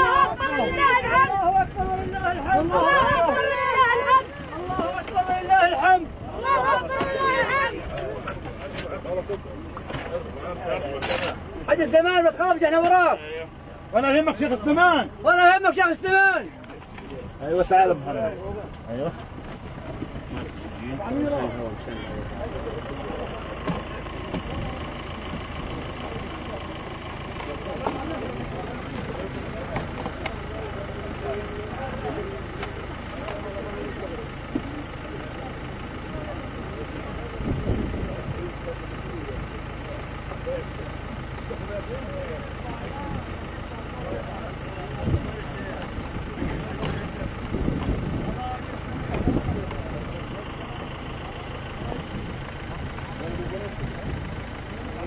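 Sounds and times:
crowd voices: 0.0s - 55.0s
engine idling: 0.0s - 55.0s.

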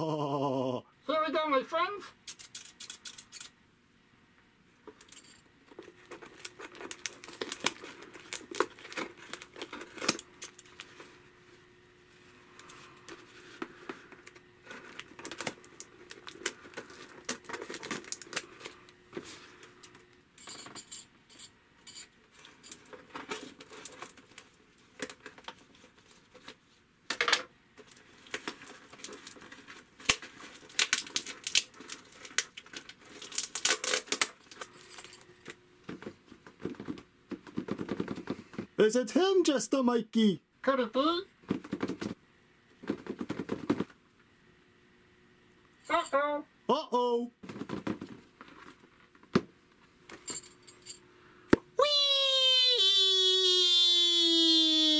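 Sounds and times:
cardboard crackling and rustling: 5.7s - 11.2s, 13.1s - 19.6s
tape tearing: 6.0s - 10.9s, 14.7s - 18.8s, 28.2s - 34.8s.

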